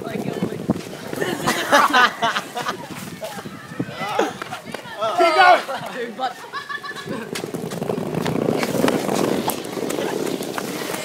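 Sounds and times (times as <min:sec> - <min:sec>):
skateboard wheels rolling on bricks: 0:00.0 - 0:11.0
wheels clicking over paver joints: 0:05.8 - 0:11.0.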